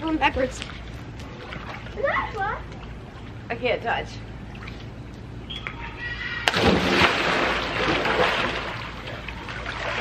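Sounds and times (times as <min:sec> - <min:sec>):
big splash into pool: 0:06.4 - 0:08.9
water churning: 0:06.4 - 0:10.0.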